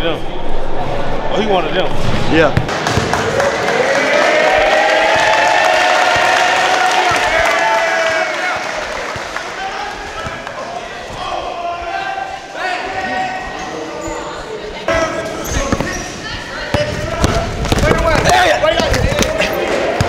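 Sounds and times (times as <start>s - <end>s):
spectators chattering: 2.4s - 20.0s.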